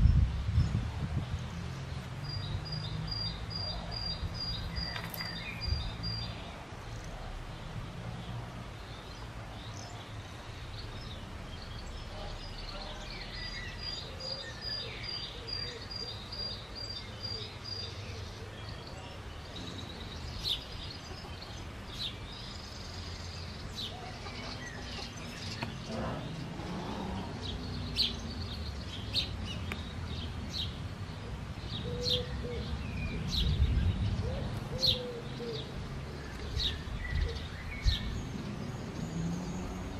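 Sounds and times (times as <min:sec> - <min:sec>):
birds calling: 0:01.4 - 0:39.9
faint low cooing: 0:25.8 - 0:28.0.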